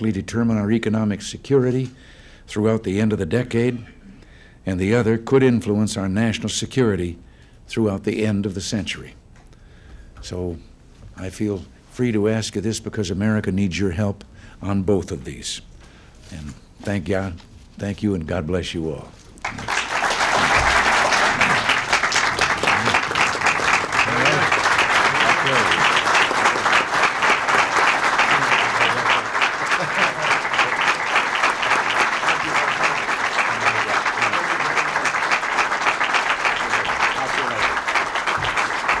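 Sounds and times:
audience applauding: 19.4 - 39.0.

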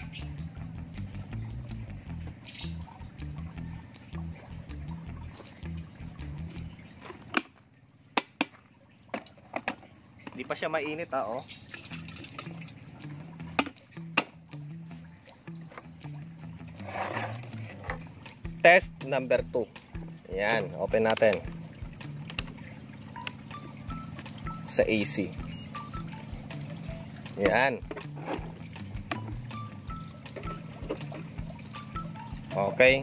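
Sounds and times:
kettle clicks and knocks: 8.2 - 10.6, 13.4 - 14.4, 17.3 - 18.1, 20.4 - 22.6, 27.2 - 29.5, 30.3 - 31.6.

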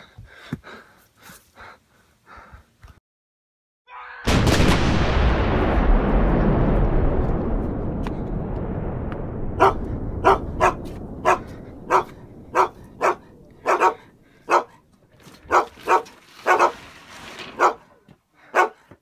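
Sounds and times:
low rumble: 4.3 - 15.5
dog barking: 9.6 - 14.8, 15.5 - 16.8, 17.6 - 17.9, 18.5 - 18.8.

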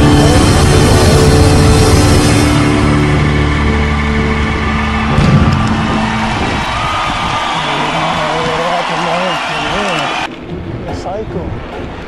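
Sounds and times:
wind buffeting microphone: 5.1 - 12.0.

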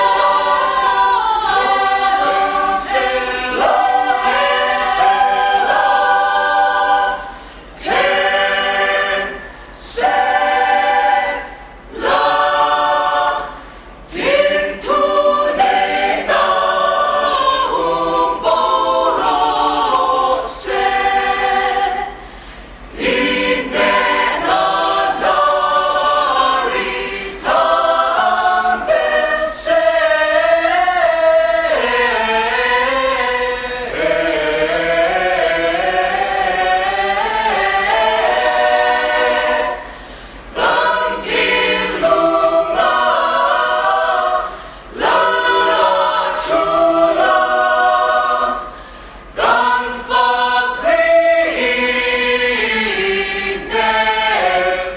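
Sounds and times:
choir singing a hymn a cappella: 0.0 - 54.9.

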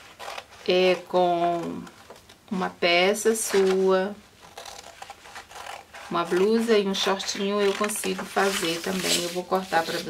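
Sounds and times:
paper rustling: 3.4 - 10.0
scissors snipping paper: 4.4 - 10.0.

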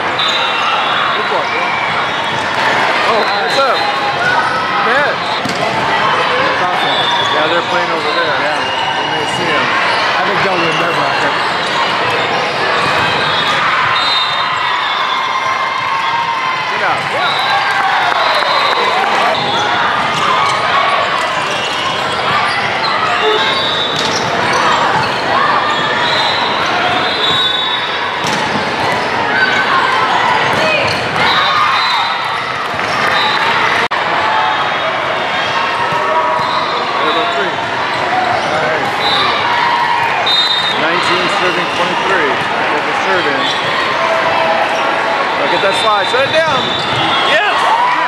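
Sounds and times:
crowd shouting and talking: 0.0 - 48.0
volleyballs slapping and thudding: 5.4 - 5.9.

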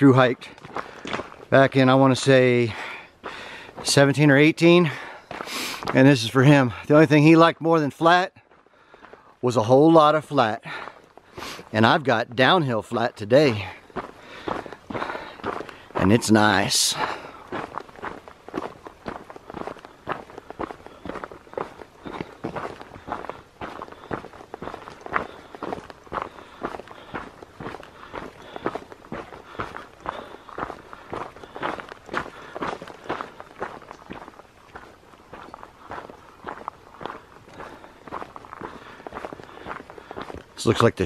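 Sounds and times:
footsteps on gravel trail: 0.0 - 41.0.

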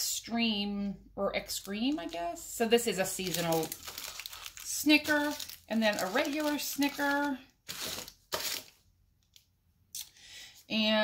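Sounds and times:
candy wrappers rustling: 1.4 - 8.9.

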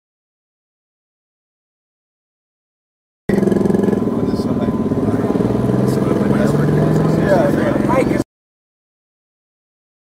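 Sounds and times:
engine running: 3.3 - 8.2
voices: 3.3 - 8.3.

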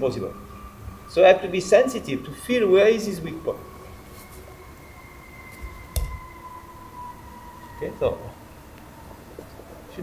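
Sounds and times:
dull thump on mat: 5.6 - 6.2.

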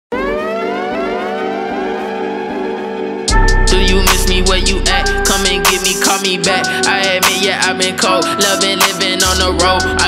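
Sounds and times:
siren-like synth tone gliding upward: 0.1 - 6.2
steady hip hop chords: 0.3 - 10.0.

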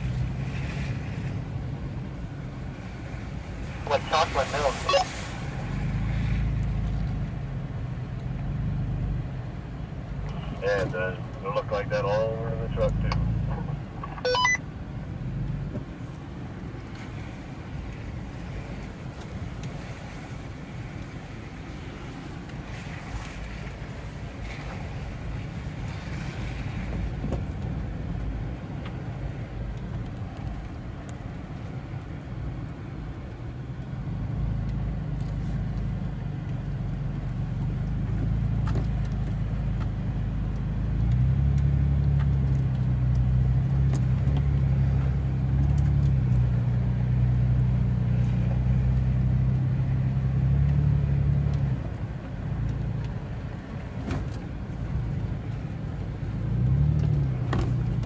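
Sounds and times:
vehicle engine droning: 0.0 - 58.0.

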